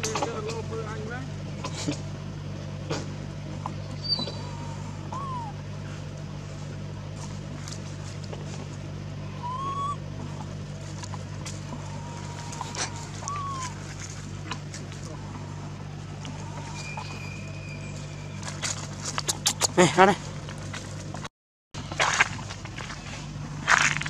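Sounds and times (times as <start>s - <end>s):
constant low hum: 0.0s - 24.0s
whistle-like animal calls: 4.0s - 5.6s, 9.4s - 10.0s, 11.9s - 13.8s, 16.2s - 18.6s.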